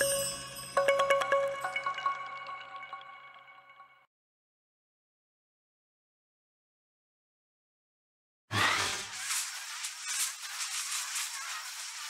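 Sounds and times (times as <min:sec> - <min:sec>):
sparkler fizzing: 0:08.8 - 0:12.0.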